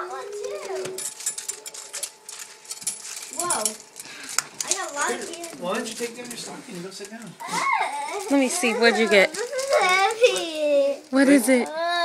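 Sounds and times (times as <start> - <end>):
crackling and rustling of handling: 0.0 - 12.0.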